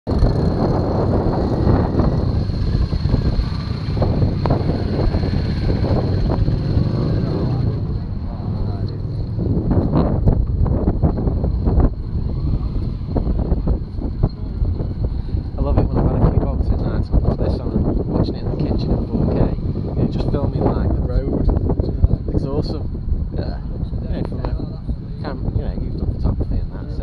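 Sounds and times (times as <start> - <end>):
wind rumbling on microphone: 0.0 - 27.0
motorcycle engines running: 0.1 - 27.0.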